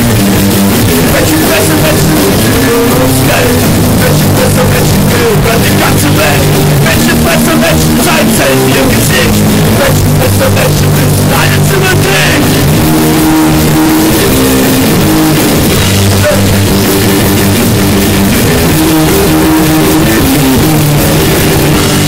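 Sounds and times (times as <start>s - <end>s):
bass: 0.0s - 22.0s
distorted electric guitar chords: 0.0s - 22.0s
drums: 0.0s - 22.0s.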